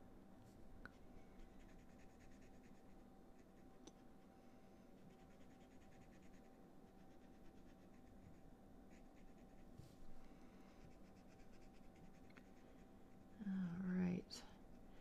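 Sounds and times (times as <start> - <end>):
marker scratching on cardstock: 5.1 - 9.6.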